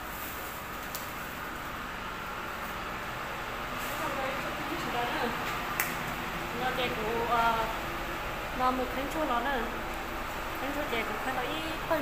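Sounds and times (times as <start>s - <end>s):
woman talking: 3.9s - 5.5s, 6.5s - 7.8s, 8.5s - 9.9s, 10.6s - 12.0s.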